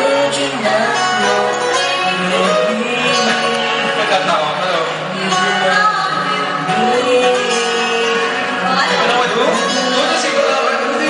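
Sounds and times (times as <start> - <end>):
woman singing: 0.0 - 4.2, 5.0 - 11.0
band accompaniment: 0.0 - 11.0.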